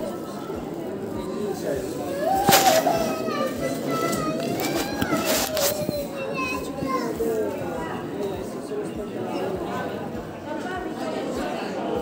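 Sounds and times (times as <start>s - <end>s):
children calling and chattering: 0.0s - 12.0s
indistinct background voices: 0.0s - 12.0s.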